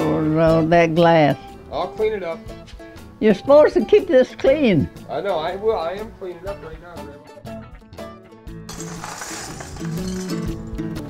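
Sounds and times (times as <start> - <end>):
background music with stepped notes: 0.0 - 11.0
broken glass swept on asphalt: 8.7 - 10.7.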